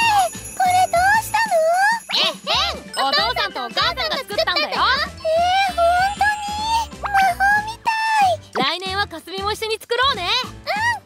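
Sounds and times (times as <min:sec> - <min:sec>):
girl exclaiming excitedly: 0:00.0 - 0:03.4, 0:04.5 - 0:08.4, 0:10.7 - 0:11.0
tinkling chime: 0:00.0 - 0:04.2
light background music: 0:00.0 - 0:11.0.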